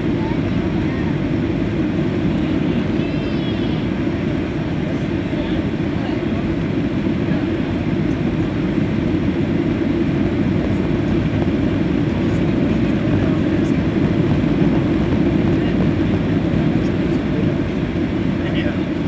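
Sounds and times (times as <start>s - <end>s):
airplane cabin engine and airflow noise: 0.0s - 19.0s.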